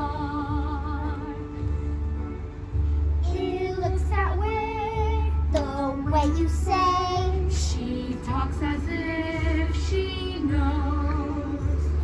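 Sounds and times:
girl singing: 3.2 - 12.0.

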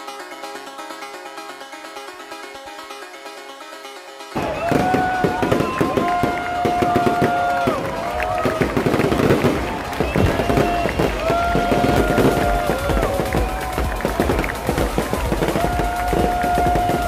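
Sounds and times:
electronic dance music: 0.0 - 17.0
fireworks bangs and crackles: 4.3 - 17.0.

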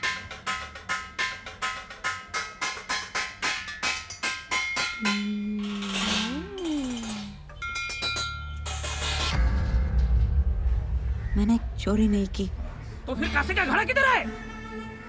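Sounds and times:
sticks hitting metal pots: 0.0 - 9.4.

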